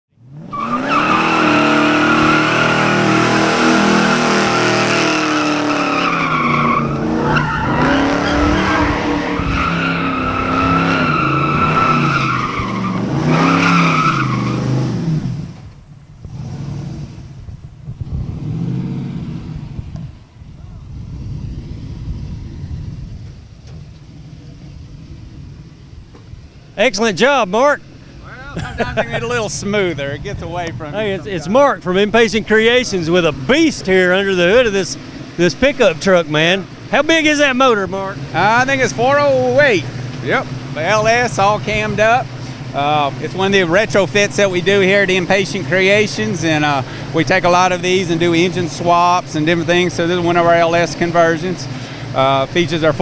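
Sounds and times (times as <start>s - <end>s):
engine revving high: 0.2s - 15.6s, 16.3s - 17.4s, 18.0s - 20.0s
tires squealing: 0.2s - 17.4s, 26.5s - 53.0s.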